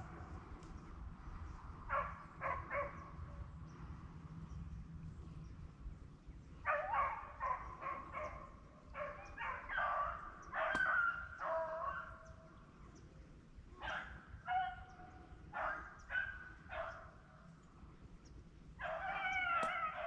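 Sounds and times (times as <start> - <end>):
hounds baying: 9.0 - 12.3, 13.8 - 17.2, 18.8 - 20.0.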